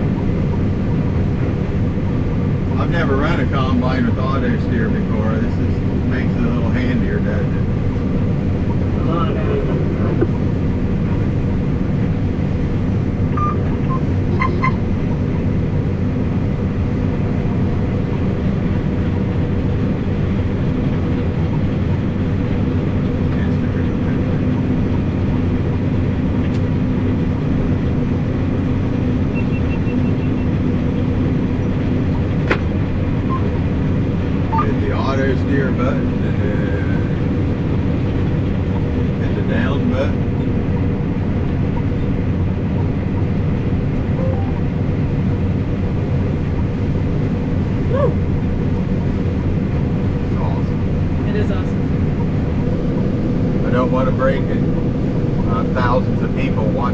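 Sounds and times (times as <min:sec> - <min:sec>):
combine harvester drone: 0:00.0 - 0:56.9.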